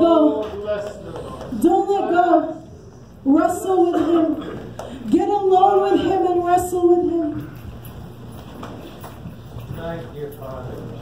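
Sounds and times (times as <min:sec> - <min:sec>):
footsteps on stage: 0:07.1 - 0:11.0.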